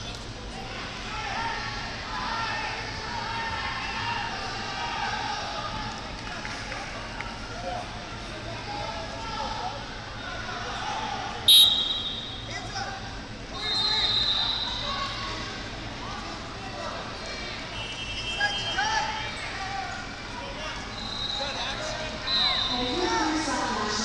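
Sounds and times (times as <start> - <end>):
chatter of many voices: 0.0 - 24.0
referee's whistle blast: 11.5 - 12.5, 13.6 - 14.8, 22.2 - 22.9.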